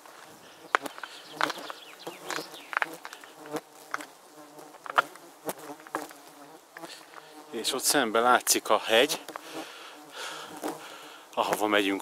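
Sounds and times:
flies buzzing: 0:00.0 - 0:11.8.

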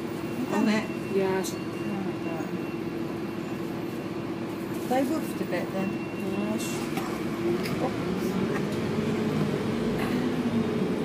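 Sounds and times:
bus cabin noise: 0:00.0 - 0:11.0
bus engine droning: 0:00.0 - 0:11.0.

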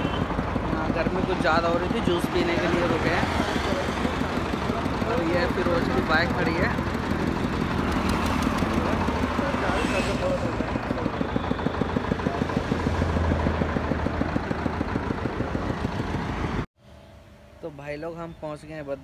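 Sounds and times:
small engine chugging: 0:00.0 - 0:16.6.

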